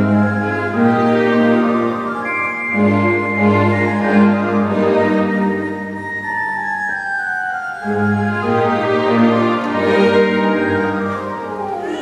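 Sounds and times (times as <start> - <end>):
flute-like organ melody: 0.0 - 12.0
low strings and ensemble: 0.0 - 12.0.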